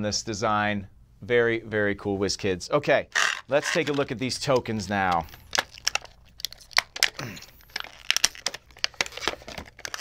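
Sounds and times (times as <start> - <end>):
plastic packet crinkling: 3.2 - 10.0.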